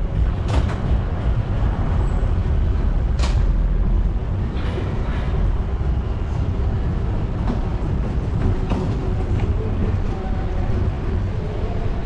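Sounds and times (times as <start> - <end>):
city street traffic rumble: 0.0 - 12.0.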